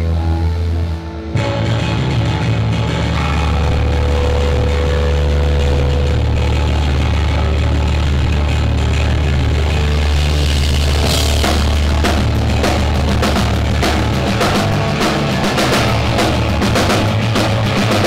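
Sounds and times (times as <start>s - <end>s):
low amp hum: 0.0s - 18.0s
rock band electric guitars and bass: 0.0s - 18.0s.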